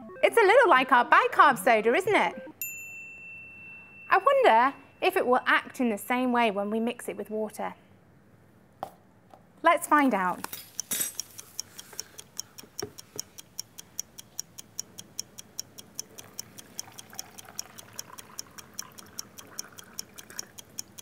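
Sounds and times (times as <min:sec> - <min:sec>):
clock ticking: 0:00.0 - 0:02.6, 0:10.7 - 0:21.0
water pouring into plastic cup: 0:16.2 - 0:20.6.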